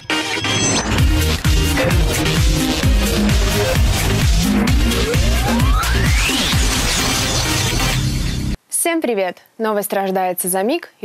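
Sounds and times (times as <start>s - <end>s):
electronic news jingle: 0.3s - 8.6s
hissy crash: 0.8s - 8.5s
pulsing low beat: 1.0s - 8.6s
woman speaking: 8.7s - 11.0s.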